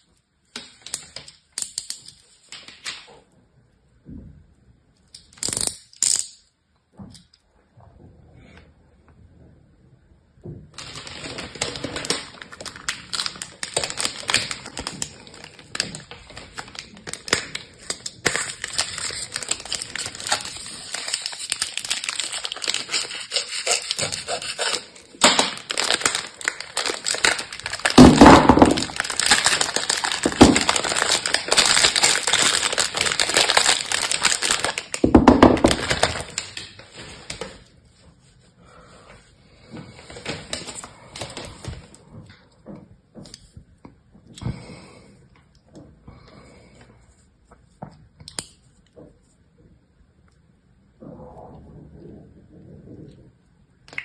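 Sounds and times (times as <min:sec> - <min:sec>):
plastic film crinkling: 0:10.7 - 0:38.0, 0:39.9 - 0:42.0.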